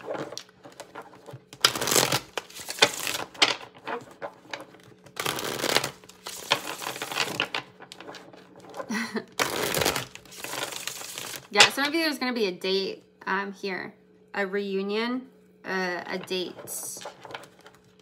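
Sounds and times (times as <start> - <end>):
cards being shuffled: 0.0 - 11.8, 16.5 - 18.0.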